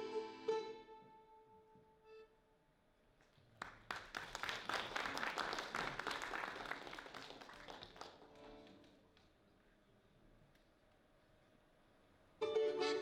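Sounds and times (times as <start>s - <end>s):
accordion held notes: 0.0s - 2.4s, 12.4s - 13.0s
audience applauding: 3.5s - 9.3s.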